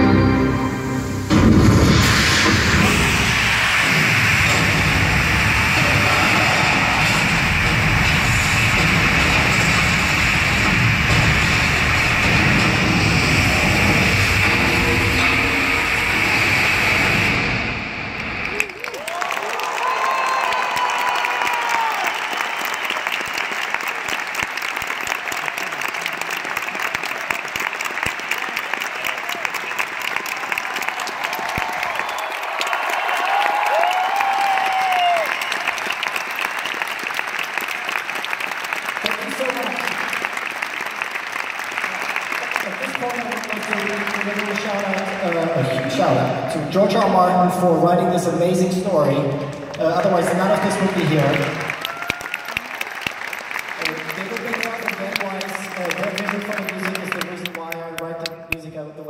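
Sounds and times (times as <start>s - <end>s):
loud live concert music: 0.0s - 18.7s
crowd applauding and cheering: 0.0s - 58.9s
high whoops: 18.5s - 23.2s, 30.3s - 36.1s, 51.7s - 53.1s.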